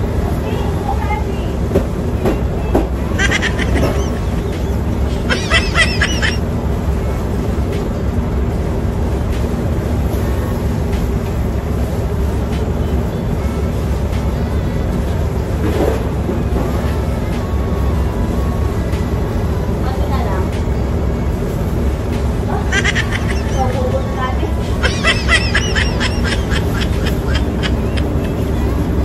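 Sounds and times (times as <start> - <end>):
machinery rumble and hum: 0.0 - 29.0.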